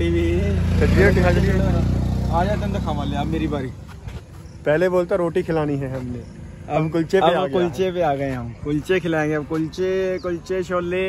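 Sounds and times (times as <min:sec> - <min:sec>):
people talking: 0:00.0 - 0:03.8, 0:04.6 - 0:11.0
vehicle engine humming: 0:00.0 - 0:11.0.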